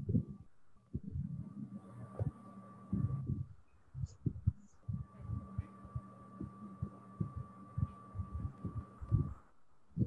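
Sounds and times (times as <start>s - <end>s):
soft low thumps: 0.0s - 2.3s, 2.9s - 10.0s
faint high whine and hum: 0.0s - 10.0s.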